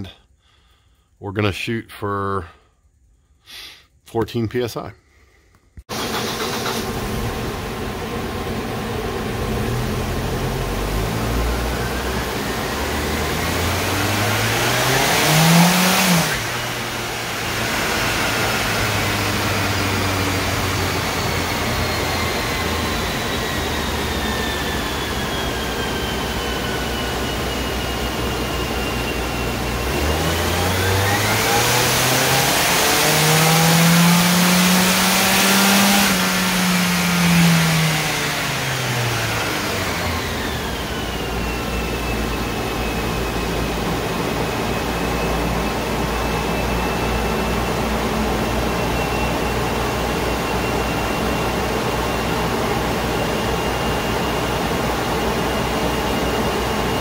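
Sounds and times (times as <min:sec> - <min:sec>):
large cooling fan running: 0:05.9 - 0:57.0
turbocharged engine revving: 0:05.9 - 0:57.0.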